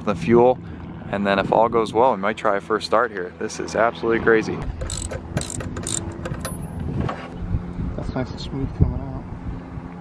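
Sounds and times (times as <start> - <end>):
ratchet wrench clicking: 4.7 - 6.6.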